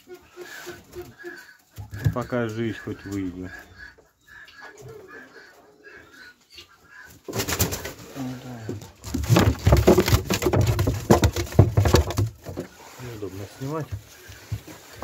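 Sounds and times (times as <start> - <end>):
knocking on wooden nest box: 9.0 - 12.7
dry straw rustling: 12.4 - 15.0.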